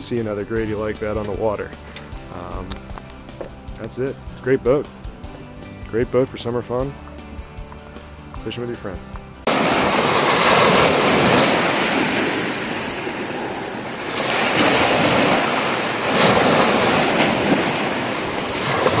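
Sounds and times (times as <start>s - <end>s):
surf washing on beach: 9.5s - 19.0s
faint high chirps: 11.3s - 14.6s.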